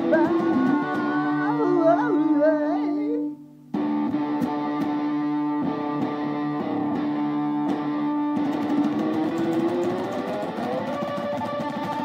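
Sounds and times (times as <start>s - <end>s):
man humming a melody: 0.0s - 3.4s.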